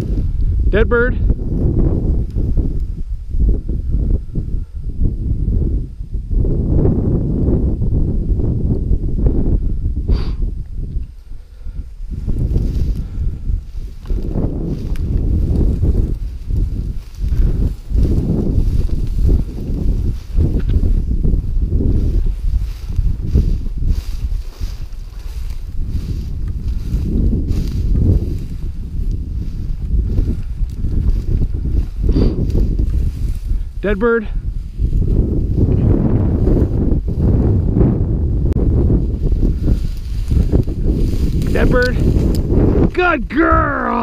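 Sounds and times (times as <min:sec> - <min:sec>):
wind on microphone: 0:00.0 - 0:44.0
footsteps through dry grass and snow: 0:01.3 - 0:44.0
grass swishing against legs: 0:12.0 - 0:33.5, 0:38.9 - 0:42.7.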